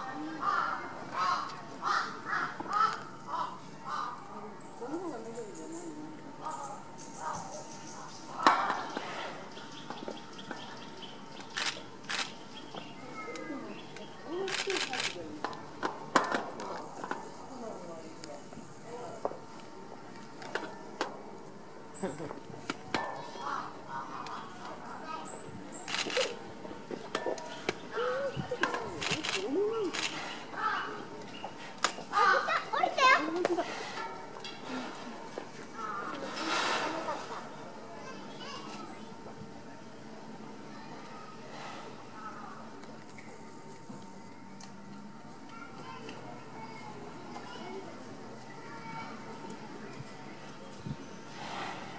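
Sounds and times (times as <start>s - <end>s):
outdoor background noise: 0.0s - 51.9s
young children chattering: 0.0s - 51.9s.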